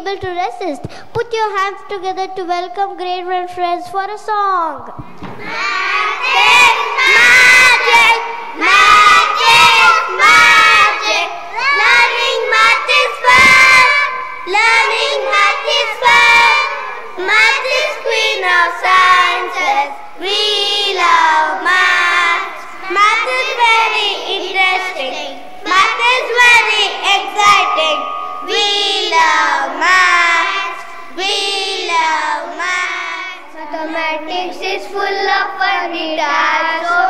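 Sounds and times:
young children singing in unison: 5.0s - 37.0s.

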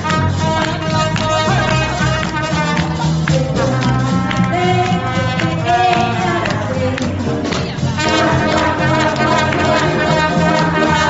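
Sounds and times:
swing jazz band playing: 0.0s - 11.0s.

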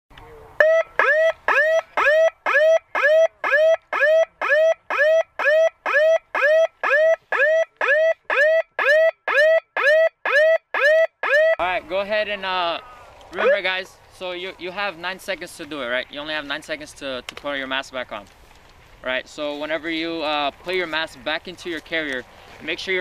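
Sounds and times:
electronic alarm beeps rising in pitch: 0.6s - 11.6s.

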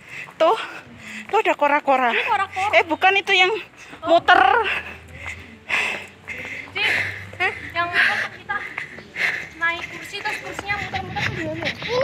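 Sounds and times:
people talking while walking: 0.0s - 12.0s.

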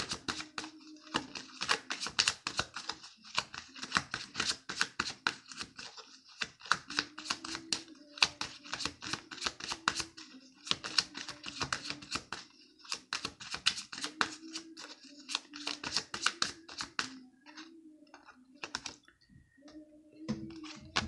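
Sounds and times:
cards being shuffled: 0.0s - 19.0s.

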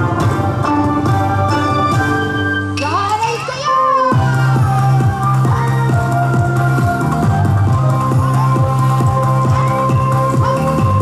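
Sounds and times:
dance music over loudspeakers: 0.0s - 11.0s
electronic beat with kick drum: 4.1s - 11.0s.

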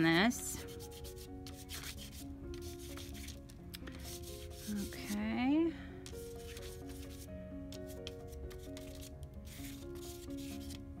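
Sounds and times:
soft background music: 0.0s - 11.0s
pastel scraping on paper: 0.6s - 5.2s, 6.1s - 10.8s.

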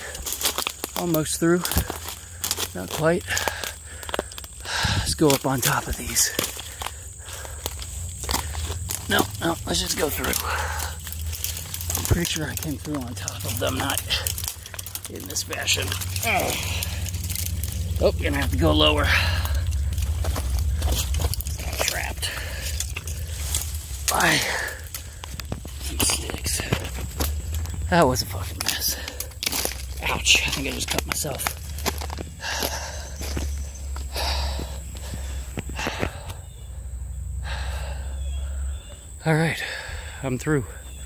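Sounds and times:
man breathing heavily: 0.0s - 0.6s, 1.6s - 12.1s, 16.2s - 18.0s, 19.0s - 27.9s, 28.6s - 29.9s, 31.6s - 41.0s
footsteps through brush: 0.0s - 36.6s
twigs snapping: 0.0s - 36.6s
branches scraping and crackling: 0.0s - 36.7s
low handling rumble: 0.0s - 41.0s
person grunting: 16.2s - 17.0s.

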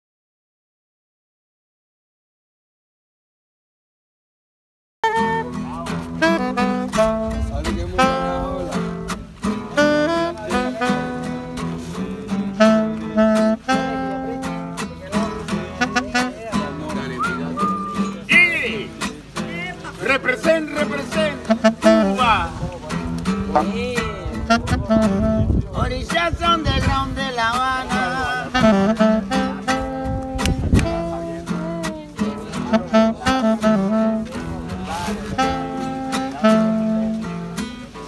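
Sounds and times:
alto saxophone melody: 5.0s - 19.0s, 21.0s - 25.8s, 28.0s - 38.0s
strummed acoustic guitar: 5.0s - 38.0s.

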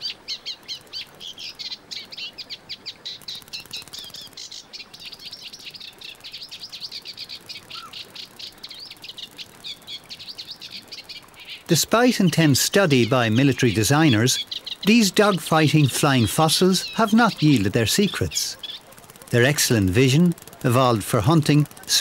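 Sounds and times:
songbird chirping: 0.0s - 22.0s.

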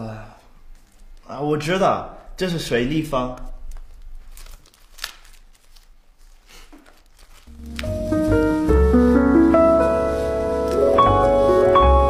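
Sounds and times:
paper rustling and crinkling: 0.6s - 1.3s, 3.1s - 12.0s.

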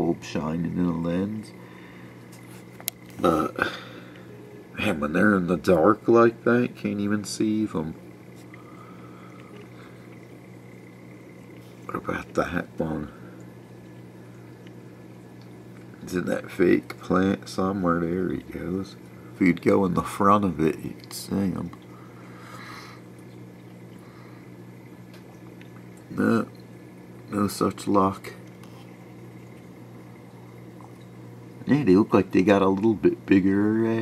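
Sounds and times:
filter humming: 0.0s - 34.0s
water trickling from filter: 1.4s - 34.0s.

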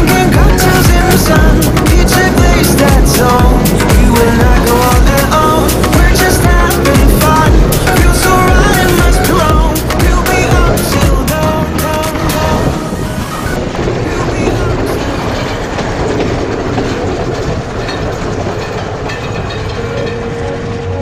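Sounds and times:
music with a beat: 0.0s - 12.8s
train wheels running on rails: 0.0s - 21.0s.

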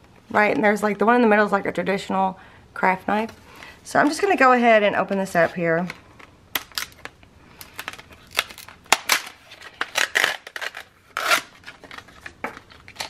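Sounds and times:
plastic blister pack crinkling: 5.9s - 13.0s.

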